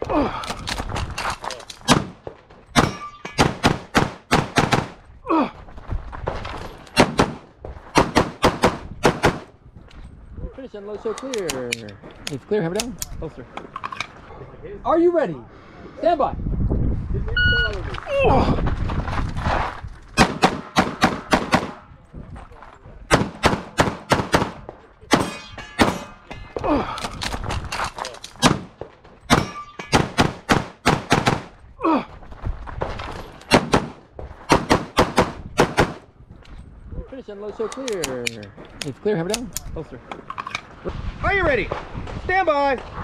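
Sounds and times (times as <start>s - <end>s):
steel target ringing: 2.8s - 3.5s, 25.2s - 26.3s, 29.3s - 30.2s
pistol firing rapid shots: 2.8s - 5.0s, 8.0s - 9.5s, 20.2s - 21.8s, 23.1s - 26.0s, 29.3s - 31.5s, 33.5s - 36.0s
rapid pistol fire: 20.2s - 21.8s, 23.1s - 25.3s, 30.0s - 31.5s.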